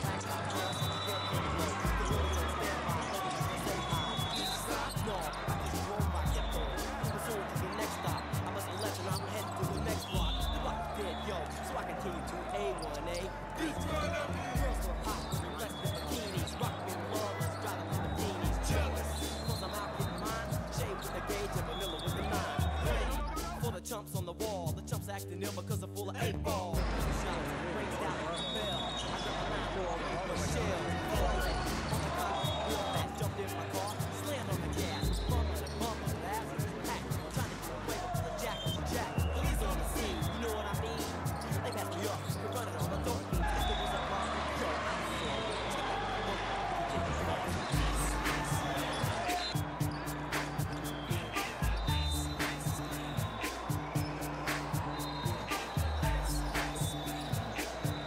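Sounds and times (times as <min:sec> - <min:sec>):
music with steady bass line: 0:00.0 - 0:12.0, 0:13.6 - 0:27.4, 0:30.4 - 0:44.2, 0:47.0 - 0:58.0
players and spectators voices: 0:00.0 - 0:58.0.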